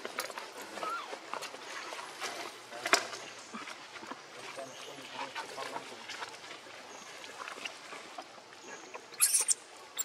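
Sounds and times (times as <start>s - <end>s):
short high squeak: 9.2s - 9.6s.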